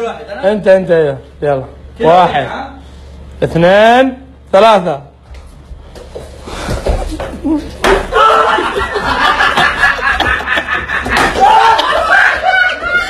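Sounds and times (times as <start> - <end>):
young men laughing: 6.9 - 13.0
young men shouting: 8.0 - 9.0, 11.3 - 13.0.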